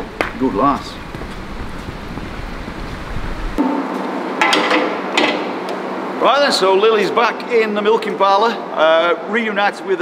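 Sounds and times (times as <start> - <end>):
wind buffeting microphone: 0.0 - 3.6.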